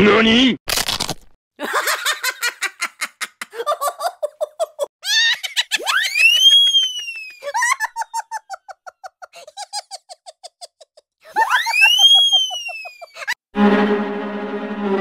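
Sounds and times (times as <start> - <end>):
person giggling: 1.6 - 6.0, 7.3 - 13.4
high whistle rising and falling: 6.1 - 7.4, 11.5 - 12.9.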